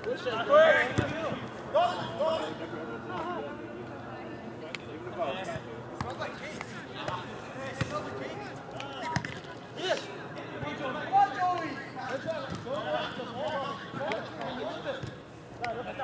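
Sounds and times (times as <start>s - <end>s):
soccer ball kick thuds: 0.9s - 1.3s, 5.5s - 6.2s.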